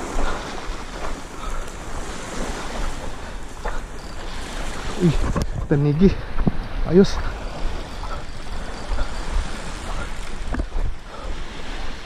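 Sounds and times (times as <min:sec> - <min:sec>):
small waves washing onto shore: 0:00.0 - 0:12.0
wind buffeting microphone: 0:00.0 - 0:12.0.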